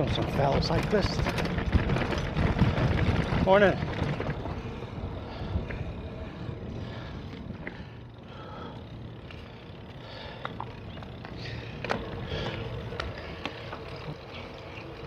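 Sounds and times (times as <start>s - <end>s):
wind noise on microphone: 0.0s - 7.8s.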